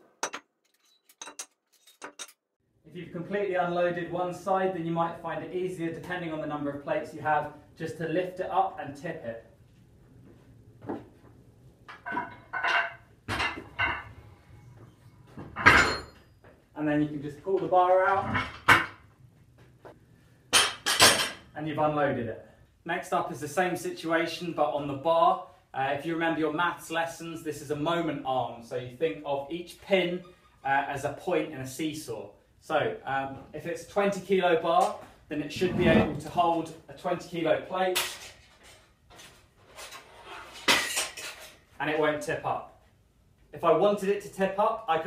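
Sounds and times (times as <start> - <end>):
metal clanks and scrapes: 0.2 - 2.4, 38.0 - 41.6
weight plate scraping: 35.5 - 36.4.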